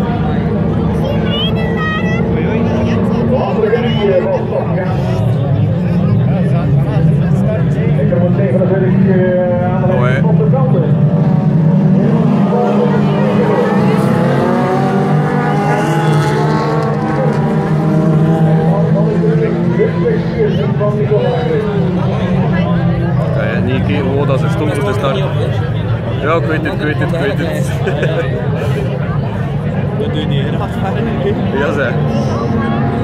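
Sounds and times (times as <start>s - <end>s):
car engines running: 0.0s - 33.0s.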